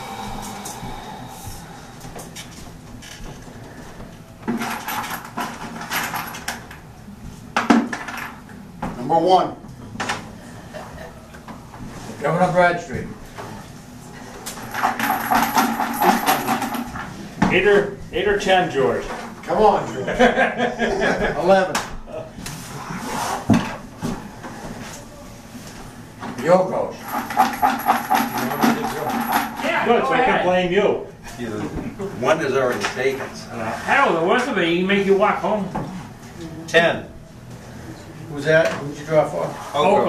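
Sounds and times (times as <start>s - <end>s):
tokens clattering in a bucket: 4.6s - 6.6s, 14.6s - 17.0s, 27.0s - 29.8s.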